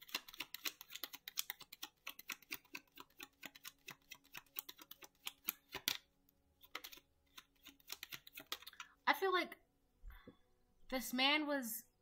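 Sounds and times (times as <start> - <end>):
cards being shuffled: 0.0 - 8.9.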